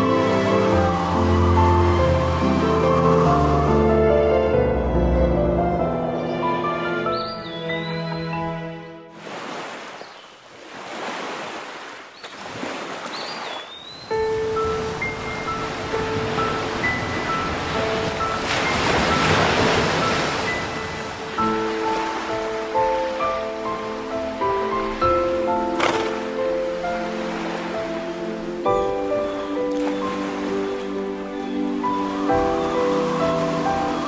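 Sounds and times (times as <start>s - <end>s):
ocean waves breaking: 0.0s - 4.3s, 9.1s - 34.0s
piano music: 0.0s - 9.1s, 14.0s - 34.0s.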